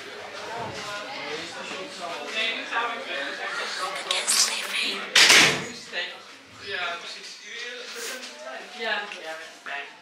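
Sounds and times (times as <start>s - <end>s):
quiet voices: 3.1s - 5.3s.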